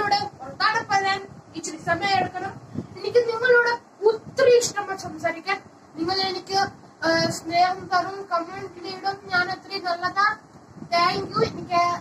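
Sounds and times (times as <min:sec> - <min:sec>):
boy singing: 0:06.0 - 0:12.0.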